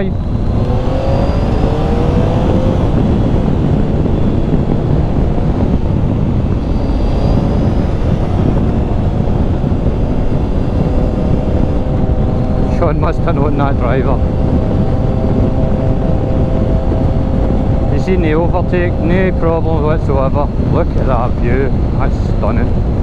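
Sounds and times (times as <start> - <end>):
motorcycle engine running: 0.0 - 22.0
wind noise on microphone: 0.0 - 23.0.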